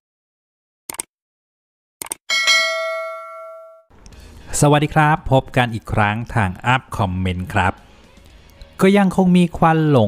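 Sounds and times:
notification bell ding: 0:02.3 - 0:03.9.

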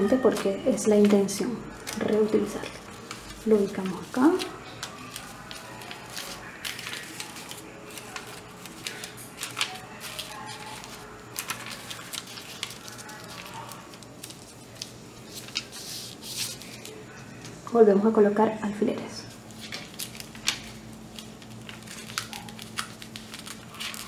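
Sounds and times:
paper and fabric rustling: 0:00.0 - 0:17.6, 0:19.0 - 0:24.0.

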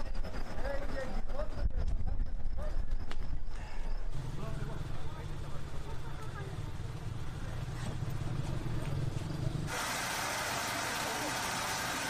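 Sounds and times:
voices calling: 0:02.2 - 0:12.0.

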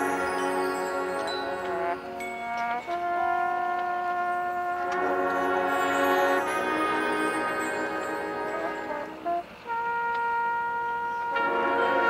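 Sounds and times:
marching band holding a chord: 0:00.0 - 0:12.0.

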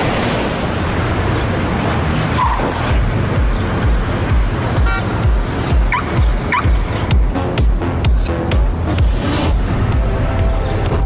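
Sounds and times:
car engine and road noise: 0:00.0 - 0:11.0
music with thumping beat: 0:03.9 - 0:09.2
car horn toot: 0:04.8 - 0:05.2.

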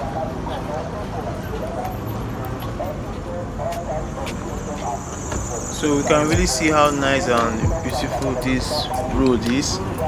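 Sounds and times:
distant voices: 0:00.0 - 0:10.0
traffic: 0:00.0 - 0:10.0.

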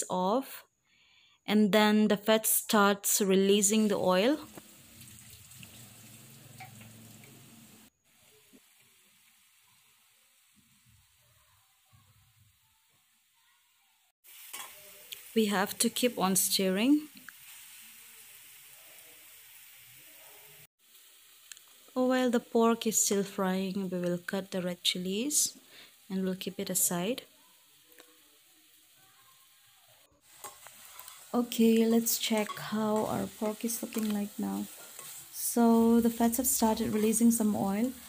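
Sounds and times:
meat sizzling in a pan: 0:03.5 - 0:38.0
faint hiss: 0:03.7 - 0:38.0
metal spatula stirring: 0:30.3 - 0:38.0.

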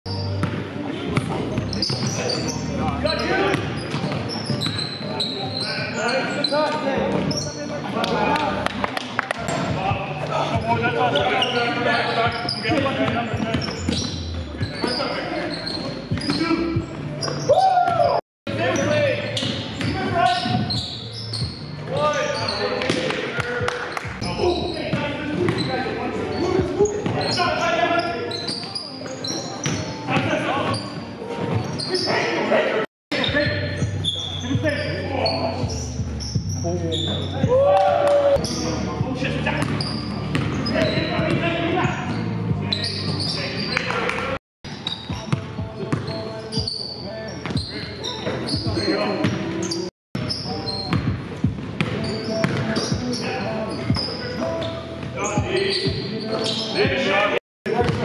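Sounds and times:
players shouting and chatting: 0:00.1 - 0:44.4, 0:45.1 - 0:51.1, 0:52.0 - 0:58.0
basketball bouncing on gym floor: 0:50.9 - 0:53.1, 0:57.8 - 0:58.0.

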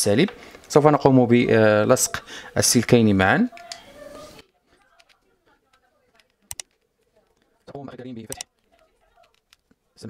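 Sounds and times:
sharp clicks: 0:06.2 - 0:06.9
screwdriver ticking on circuit board: 0:06.3 - 0:06.7.

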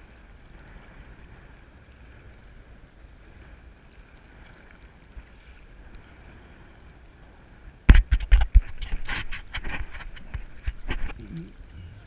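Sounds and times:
water lapping and splashing: 0:00.0 - 0:12.0
wind buffeting microphone: 0:00.0 - 0:12.0.

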